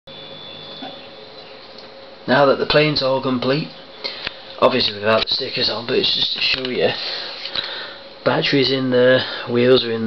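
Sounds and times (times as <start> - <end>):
faint high whine: 0.1 - 10.0
room tone hiss and hum: 0.1 - 10.0.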